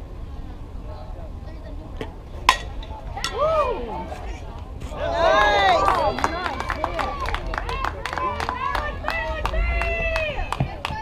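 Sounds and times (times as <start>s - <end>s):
steady low rumble: 7.4s - 10.9s.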